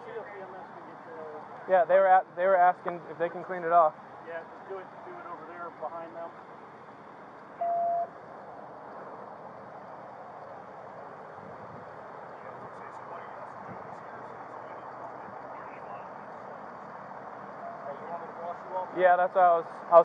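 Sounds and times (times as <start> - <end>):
outdoor background noise: 0.0 - 20.0
faint distant voices: 12.0 - 20.0.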